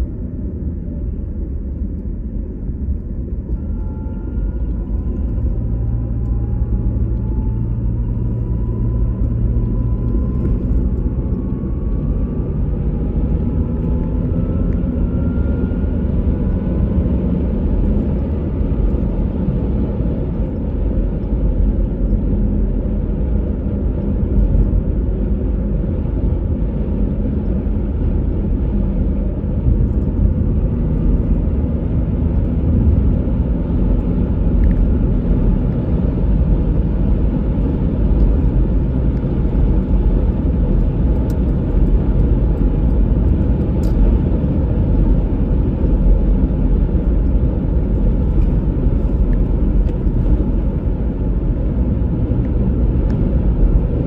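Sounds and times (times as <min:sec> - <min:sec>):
car engine and tyres rumbling: 0:00.0 - 0:54.0
faint whine rising in pitch: 0:00.0 - 0:54.0.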